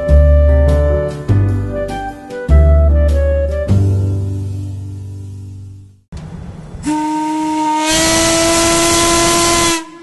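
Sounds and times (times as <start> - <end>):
steam whistle blast: 6.8 - 10.0.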